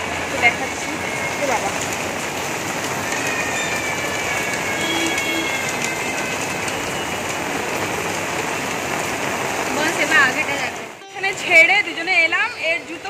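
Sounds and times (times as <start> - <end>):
rain on pavement and shutters: 0.0 - 13.0.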